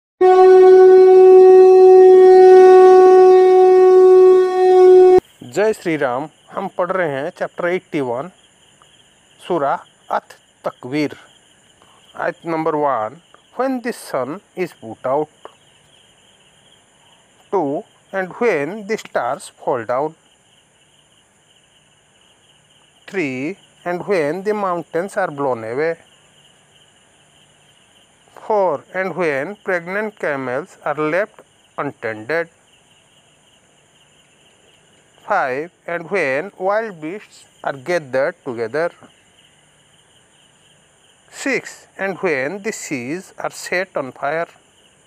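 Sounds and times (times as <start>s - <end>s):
conch shell blown: 0.2s - 5.2s
person speaking: 35.2s - 39.1s, 41.3s - 44.5s.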